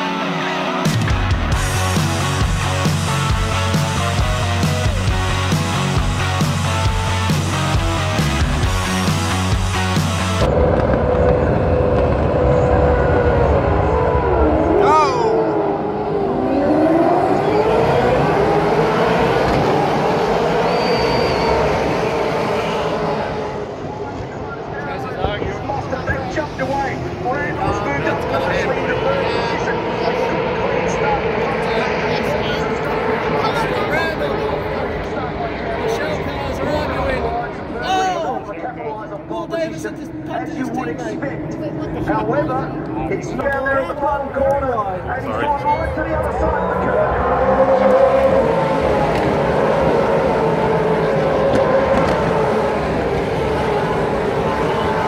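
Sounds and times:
rock music: 0.0 - 12.3
race car engines passing: 0.0 - 55.0.

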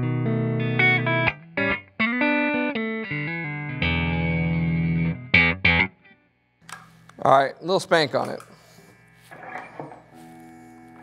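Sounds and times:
electric guitar chord ringing: 0.0 - 6.4, 9.4 - 11.0
electrical hum: 6.6 - 11.0
guitar pick and string noises: 8.0 - 11.0.

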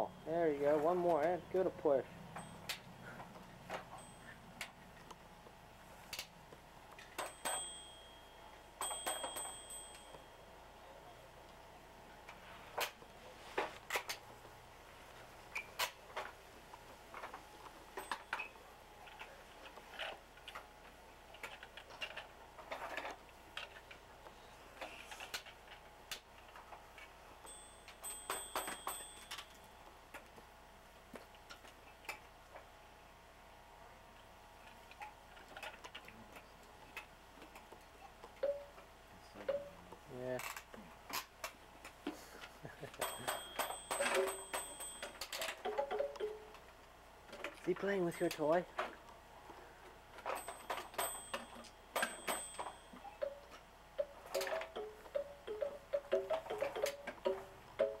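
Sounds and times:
toy high ringing: 7.2 - 10.5, 27.4 - 29.7, 43.0 - 46.6, 50.2 - 58.0
plastic toy train clattering: 21.3 - 24.0, 40.4 - 41.6.

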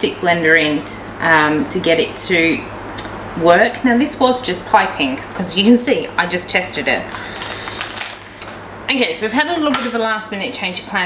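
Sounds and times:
plastic piping bag crinkling: 6.8 - 8.6.

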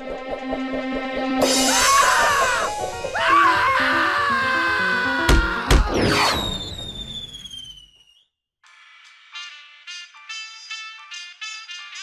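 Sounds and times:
cartoon heavy thumps: 5.3 - 7.1
falling whistle-like tone: 5.9 - 8.4.

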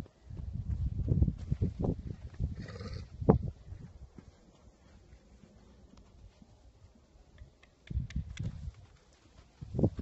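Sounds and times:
hooves thudding on dirt: 0.0 - 10.0.

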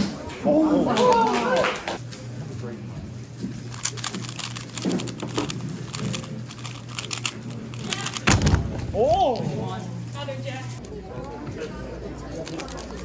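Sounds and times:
puzzle cube plastic clicks: 3.7 - 8.3.

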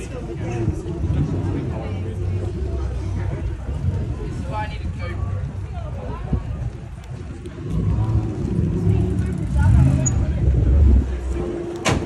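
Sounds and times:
car engine rumbling: 0.0 - 12.0
street crowd voices: 0.0 - 12.0.

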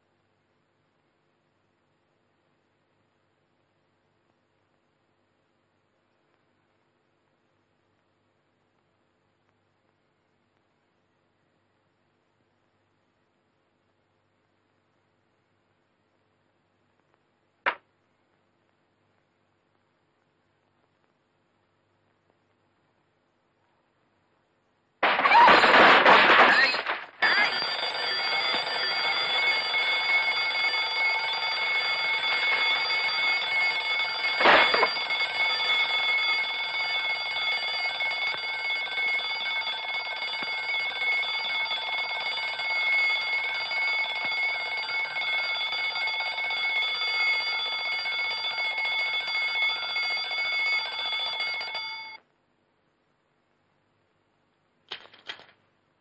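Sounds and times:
alarm clock bell ringing: 27.2 - 52.2.

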